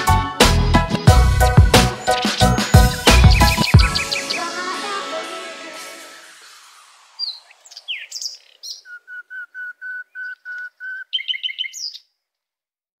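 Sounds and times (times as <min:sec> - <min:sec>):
songbird singing: 0:00.7 - 0:04.8, 0:07.0 - 0:12.4.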